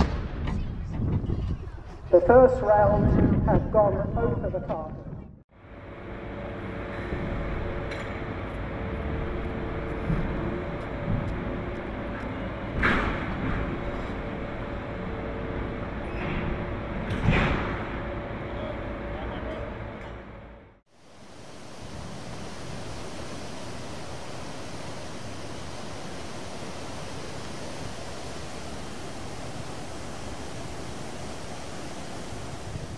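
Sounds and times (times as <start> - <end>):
wind: 0.0 - 32.9
water noise: 5.6 - 20.0, 20.9 - 32.9
port machinery humming: 5.6 - 32.9
shipping container banging: 6.9 - 19.0.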